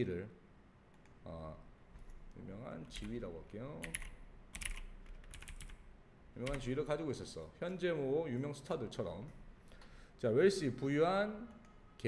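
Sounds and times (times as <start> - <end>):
keyboard keys clicking: 3.8 - 5.8.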